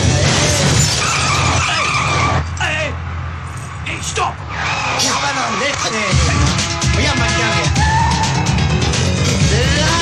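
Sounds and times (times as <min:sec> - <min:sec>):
car tyres screeching: 0:00.0 - 0:10.0.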